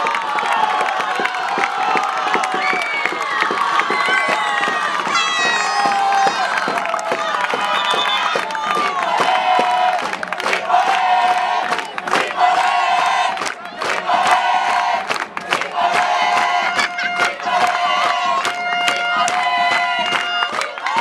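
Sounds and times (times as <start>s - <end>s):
crowd cheering and yelling: 0.0s - 21.0s
sharp claps or bangs: 0.6s - 12.7s, 13.3s - 21.0s.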